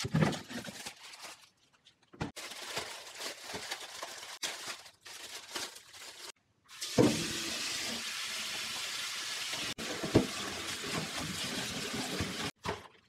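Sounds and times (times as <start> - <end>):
tap water rushing into sink: 6.7 - 12.8.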